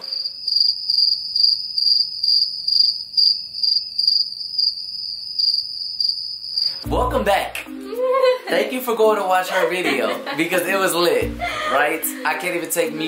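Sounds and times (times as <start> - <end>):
cricket chirping: 0.0 - 6.9
speech: 8.5 - 13.0.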